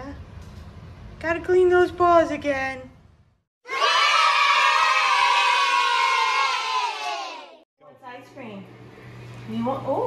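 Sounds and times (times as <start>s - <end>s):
children cheering: 3.7s - 7.6s.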